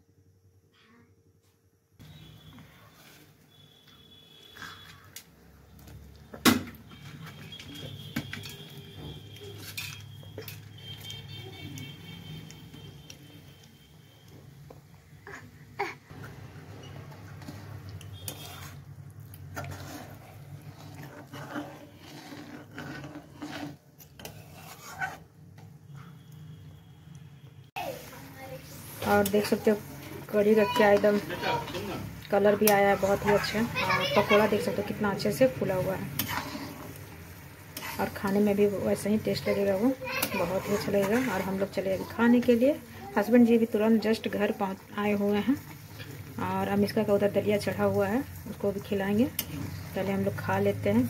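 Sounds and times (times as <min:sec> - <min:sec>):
metal utensils clinking on pot: 0:09.6 - 0:10.7.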